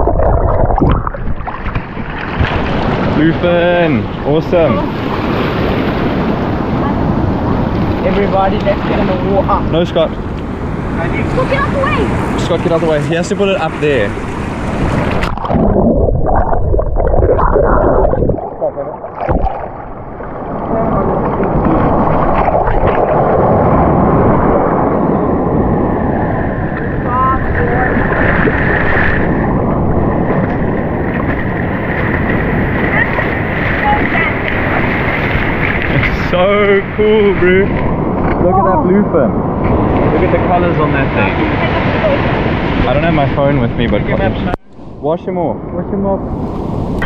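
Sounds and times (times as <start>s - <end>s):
wind buffeting microphone: 0.0s - 47.0s
surf washing over sand: 1.3s - 16.0s, 17.0s - 47.0s.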